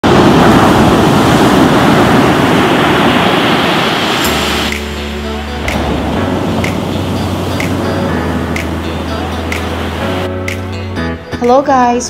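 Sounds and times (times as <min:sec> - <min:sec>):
ocean waves breaking: 0:00.0 - 0:11.1.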